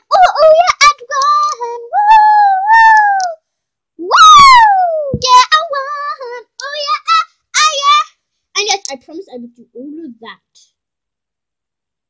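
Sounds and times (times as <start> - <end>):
child singing wordless tune: 0.0 - 3.4, 4.8 - 10.8.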